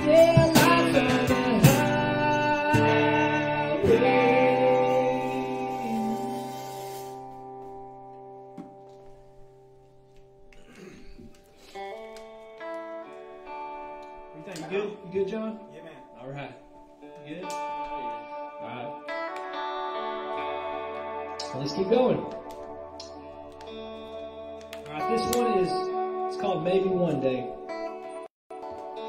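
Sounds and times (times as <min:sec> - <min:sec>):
guitar chord ringing out: 0:00.0 - 0:10.4, 0:11.6 - 0:29.0
guitar picked in short notes: 0:17.1 - 0:29.0.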